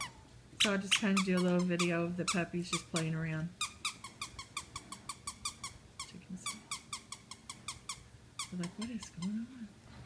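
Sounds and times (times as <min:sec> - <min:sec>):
squeaky dog toy squeaking: 0:00.0 - 0:00.2, 0:00.9 - 0:09.4.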